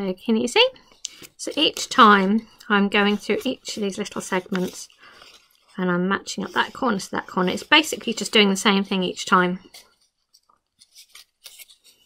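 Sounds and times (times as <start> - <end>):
paper rustling and scraping: 2.9 - 12.0.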